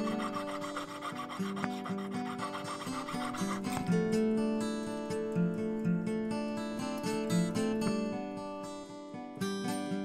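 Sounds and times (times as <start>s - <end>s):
saw blade cutting metal: 0.0s - 5.3s.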